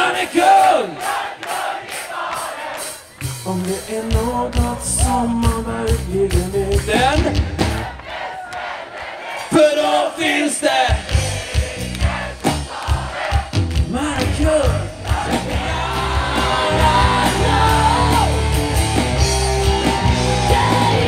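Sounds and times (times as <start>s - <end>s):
live band music: 0.0s - 8.0s, 10.8s - 21.0s
crowd shouting and singing along: 0.0s - 21.0s.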